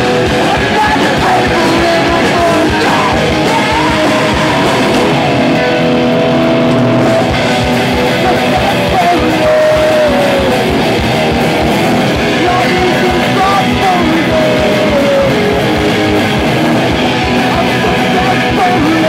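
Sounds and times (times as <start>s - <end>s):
person singing into microphone: 0.0s - 5.5s, 8.1s - 10.9s, 12.1s - 15.8s, 17.2s - 19.0s
electric guitars: 0.0s - 19.0s.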